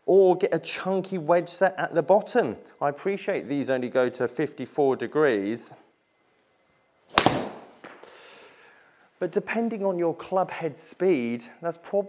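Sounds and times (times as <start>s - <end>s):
golf club striking ball: 7.1s - 8.0s.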